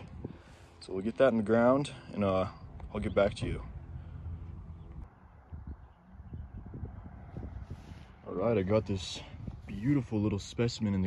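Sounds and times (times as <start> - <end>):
wind rumble on microphone: 0.0 - 0.7, 2.5 - 11.0.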